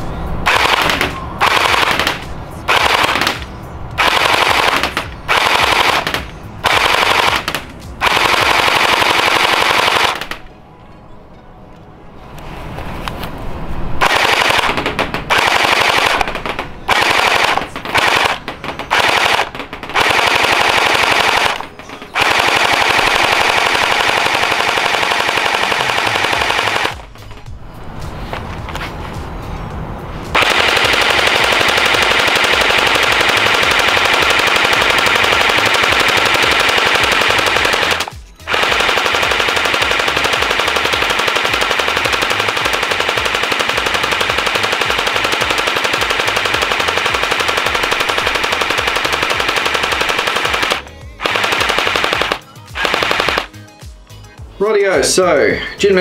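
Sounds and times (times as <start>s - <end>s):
gel blaster firing full auto: 0.5s - 10.4s, 14.0s - 27.1s, 30.4s - 53.5s.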